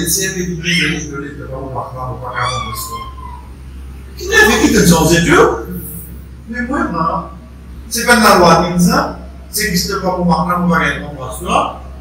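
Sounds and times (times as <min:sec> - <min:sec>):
faint voices: 0:00.0 - 0:06.0
high-pitched descending squeal: 0:02.2 - 0:03.5.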